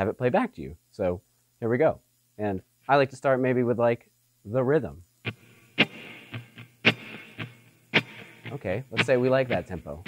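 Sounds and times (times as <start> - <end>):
muted electric guitar strumming: 5.2 - 10.0.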